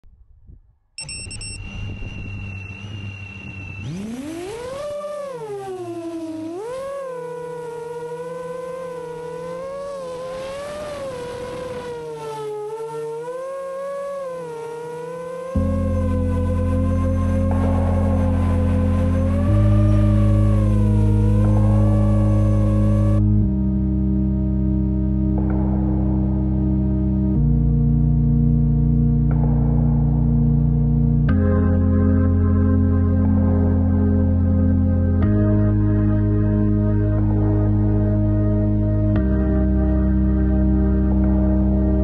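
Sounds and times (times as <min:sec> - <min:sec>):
quadcopter motors whining: 0:01.0 - 0:23.2
ambient music with bass notes: 0:01.0 - 0:42.0.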